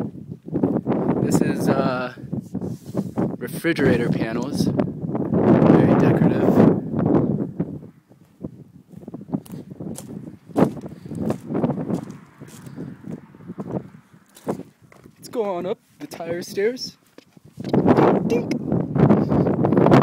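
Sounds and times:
rustling on microphone: 0.0 - 4.6, 8.1 - 18.2
footsteps: 8.1 - 16.2.

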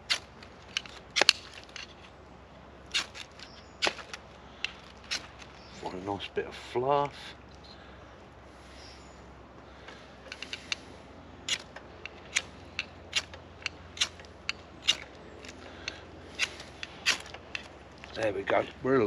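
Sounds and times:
knife blade scraping: 11.5 - 17.7.

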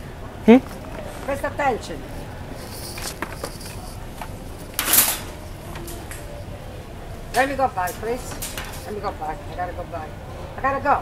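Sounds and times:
loud rustling scrape: 2.6 - 6.2
shopping cart clicks and rattles: 2.6 - 9.2.

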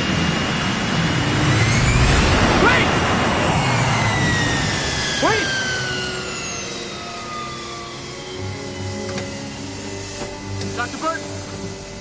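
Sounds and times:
jet engines rumbling and whining: 0.0 - 12.0.

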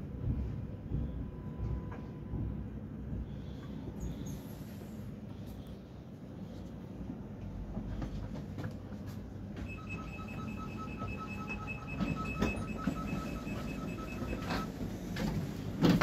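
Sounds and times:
low hum of train: 0.0 - 16.0
door signal beeping rapidly: 9.6 - 14.8.

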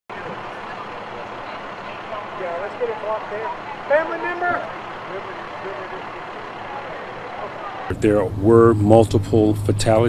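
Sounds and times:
faint voices: 0.1 - 10.0
vehicles idling: 0.1 - 10.0.

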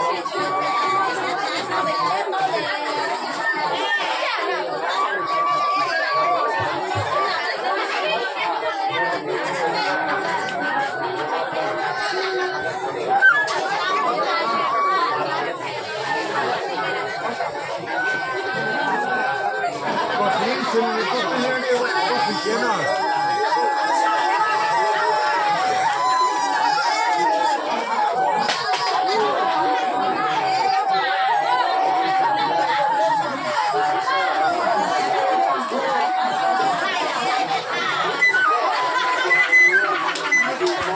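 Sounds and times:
people chattering: 0.0 - 40.9
bamboo flute playing: 22.9 - 27.6, 38.1 - 40.6
bamboo flute playing held notes: 38.1 - 40.7.

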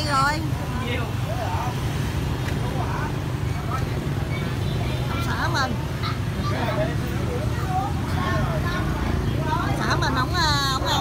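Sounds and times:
faint voices: 0.0 - 11.0
motor scooter traffic rumble: 0.0 - 11.0.

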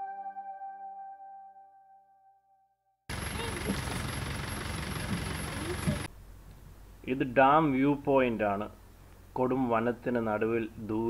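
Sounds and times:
vehicle engine and road rumble: 3.1 - 6.9.

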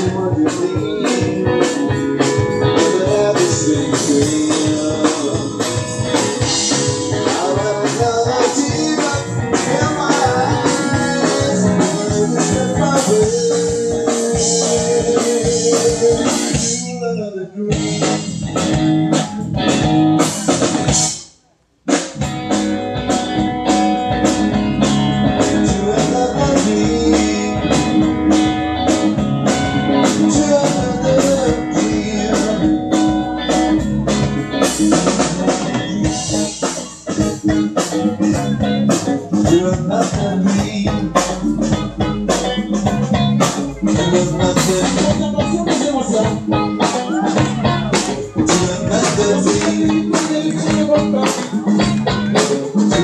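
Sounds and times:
electric guitar: 0.0 - 21.3, 21.9 - 53.0
bass guitar: 0.0 - 53.0
drum kit: 0.0 - 53.0.

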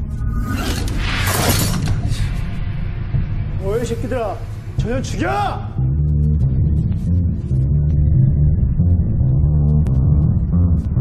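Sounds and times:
low rumbling film score: 0.0 - 11.0.

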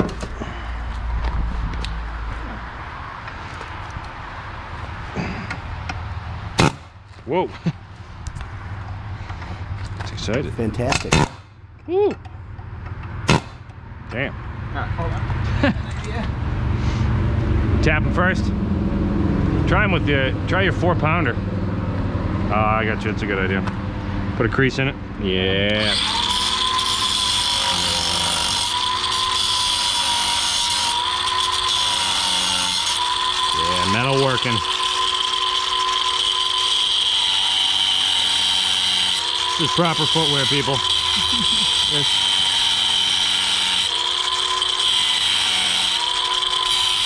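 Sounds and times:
pneumatic air hammer burst: 6.6 - 7.0, 10.9 - 11.5, 13.2 - 13.7
angle grinder cutting steel: 25.7 - 47.0.

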